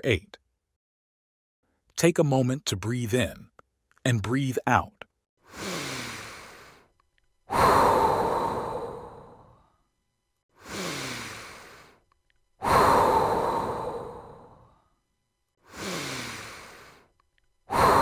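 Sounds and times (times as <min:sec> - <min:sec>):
slow deep breathing: 0:05.4 - 0:06.9, 0:07.5 - 0:09.9, 0:10.5 - 0:12.0, 0:12.6 - 0:15.0, 0:15.6 - 0:17.1, 0:17.7 - 0:18.0.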